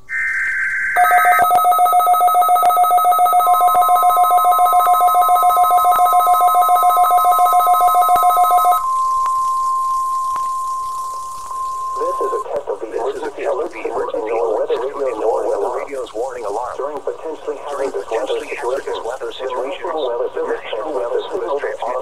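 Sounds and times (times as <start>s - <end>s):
digital tone burst: 0.0s - 10.8s, 11.5s - 12.4s
rapid two-tone beeping: 0.0s - 12.4s
steady warning tone: 0.0s - 12.5s.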